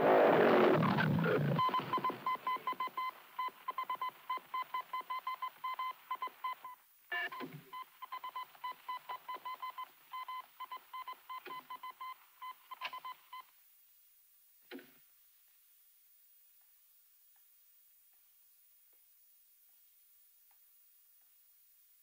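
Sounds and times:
high-pitched electronic beeps: 0.8 - 14.0.

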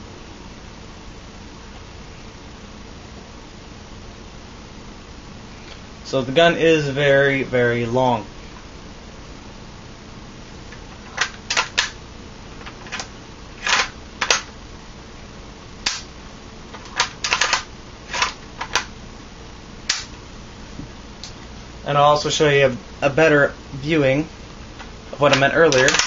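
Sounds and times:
rifle handling clicks and knocks: 10.7 - 12.0, 12.6 - 14.5, 16.7 - 18.9, 24.8 - 26.0.

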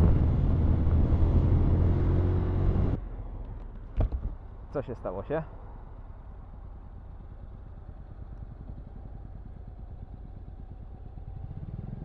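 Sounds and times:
motorcycle engine drone: 0.0 - 3.1, 5.8 - 12.0.

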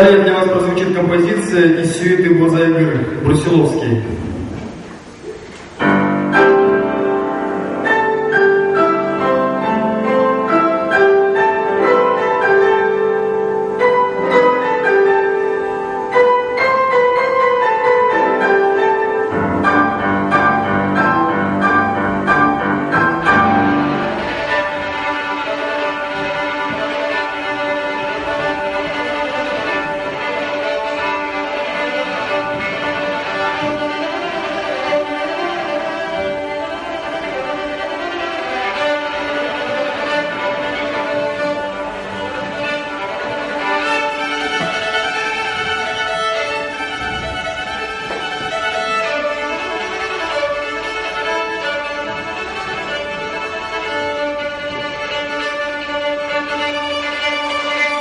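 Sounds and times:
piano accompaniment: 0.0 - 58.0
violin melody: 0.0 - 58.0.

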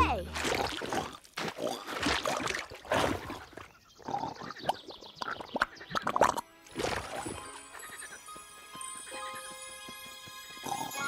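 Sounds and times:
mud splashing: 0.0 - 3.8, 4.7 - 7.8.

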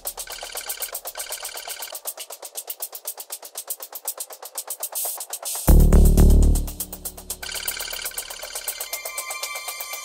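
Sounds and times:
fast ticking pulse: 5.7 - 8.9.

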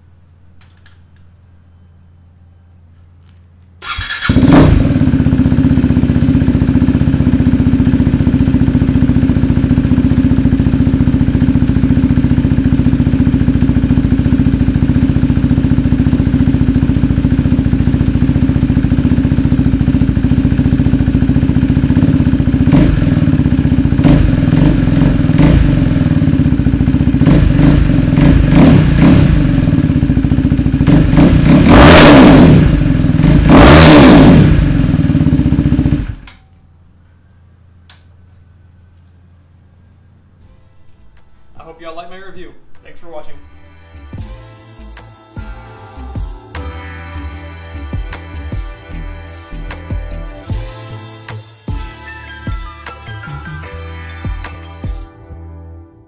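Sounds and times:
motorcycle throttle revs: 3.8 - 36.2
motorcycle engine idling: 3.8 - 40.4.

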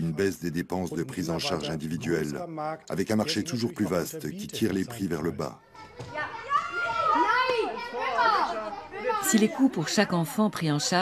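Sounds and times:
young children calling out and chattering: 5.5 - 10.4.

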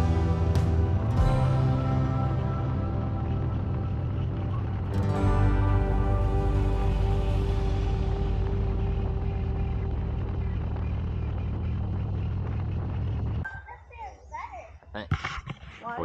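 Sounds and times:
motorcycle engine hum: 0.0 - 13.5
wind and road rush: 6.5 - 13.4.

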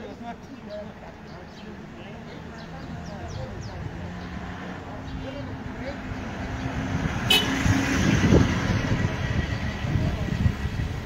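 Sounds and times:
car engine and tyre noise: 1.0 - 11.0.

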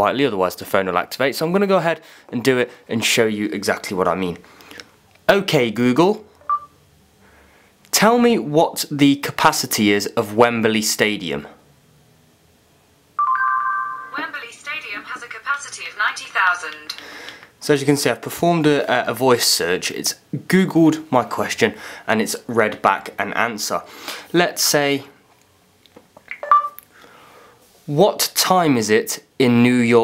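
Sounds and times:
phone electronic listening tone: 13.2 - 14.3, 26.4 - 26.8.

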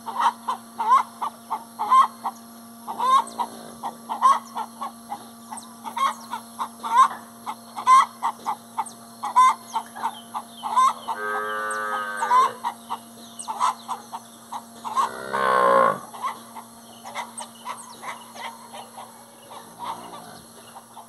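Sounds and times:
chickens clucking: 0.0 - 21.0
cattle bellowing: 10.7 - 12.7, 14.5 - 16.4, 18.4 - 20.6.

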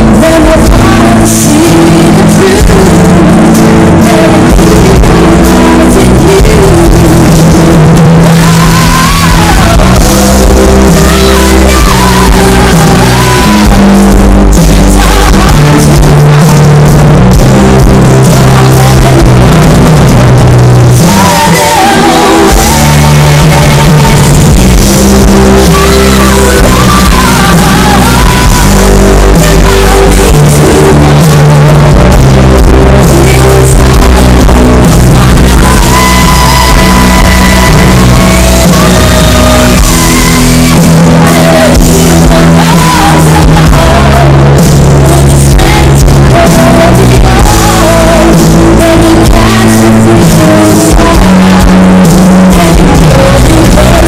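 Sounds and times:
live rock band playing: 0.0 - 54.0
woman singing lead: 0.0 - 54.0.

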